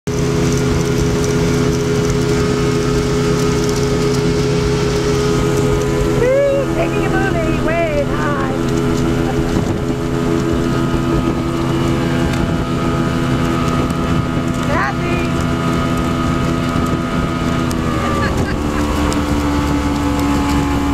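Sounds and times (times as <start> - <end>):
speedboat engine running: 0.0 - 20.9
water rushing past boat: 0.0 - 20.9.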